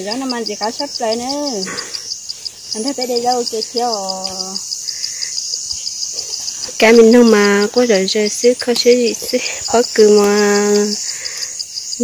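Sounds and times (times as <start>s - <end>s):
insect chirping: 0.0s - 12.0s
steady high hiss: 0.0s - 12.0s.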